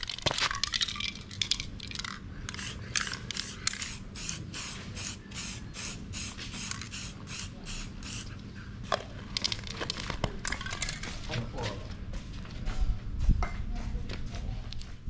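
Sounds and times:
spray paint can hissing bursts: 2.5 - 8.3.

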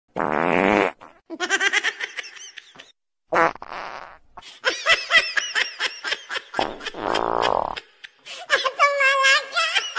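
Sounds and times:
farts: 0.2 - 1.2, 3.3 - 4.2, 6.6 - 7.8.

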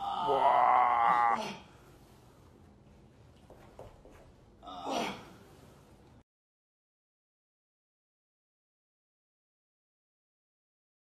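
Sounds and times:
person gasping: 4.6 - 5.5.

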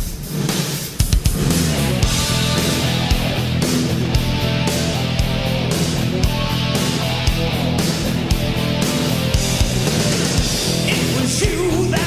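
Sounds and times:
drums: 0.0 - 12.0
bass guitar: 1.3 - 12.0
electric guitar: 1.4 - 12.0.

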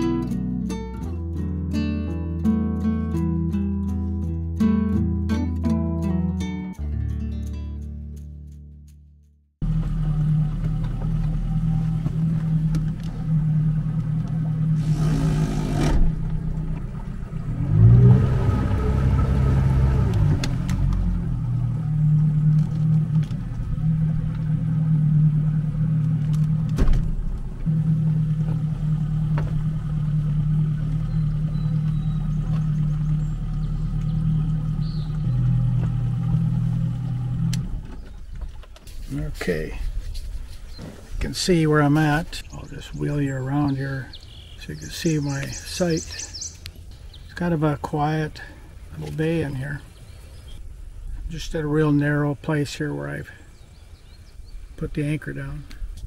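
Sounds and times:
outboard motor running: 9.6 - 17.6, 18.2 - 38.8.

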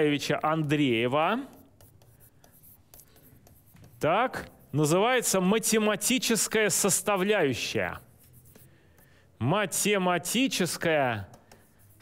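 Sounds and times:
pen writing on whiteboard: 0.3 - 5.5, 6.4 - 9.4, 10.2 - 12.0.

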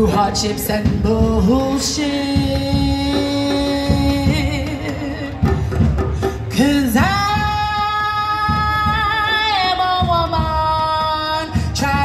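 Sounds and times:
live band with drums and bass: 0.0 - 12.0
woman singing through pa: 0.0 - 12.0.

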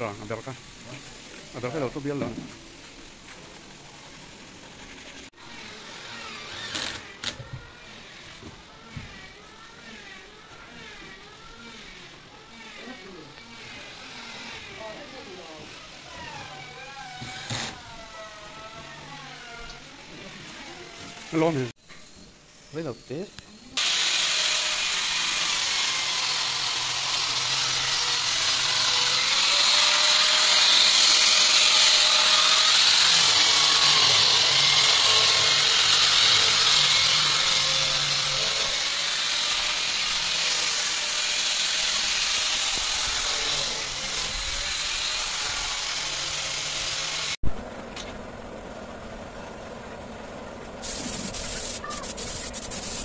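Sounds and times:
electric sander on wood: 8.0 - 21.7, 23.8 - 47.4.

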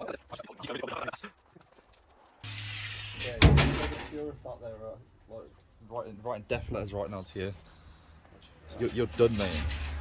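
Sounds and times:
loud bang: 3.2 - 4.2.

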